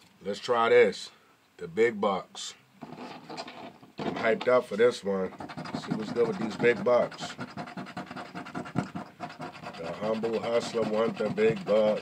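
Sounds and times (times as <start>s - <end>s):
scratching a lottery ticket: 2.8s - 12.0s.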